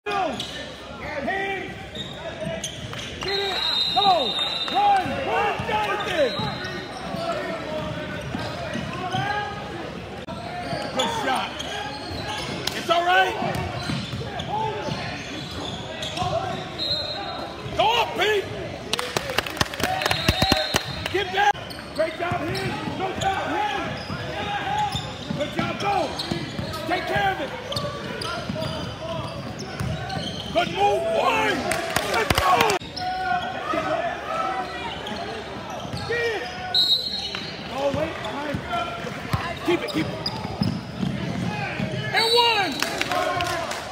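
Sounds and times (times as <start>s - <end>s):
voices from bench and crowd: 0.0s - 43.9s
sneakers squeaking: 0.1s - 18.8s, 20.0s - 31.6s, 32.6s - 43.0s.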